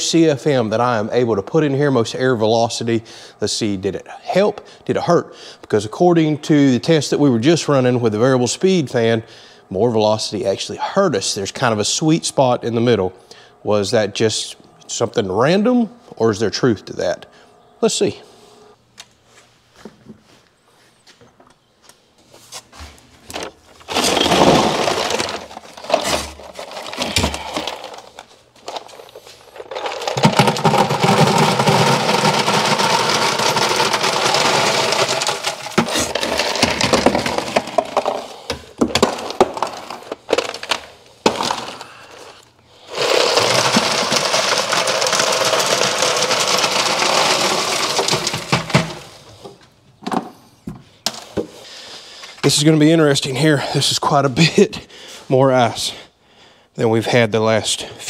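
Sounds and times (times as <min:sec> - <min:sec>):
ice clattering into bucket: 0:23.3 - 0:49.2.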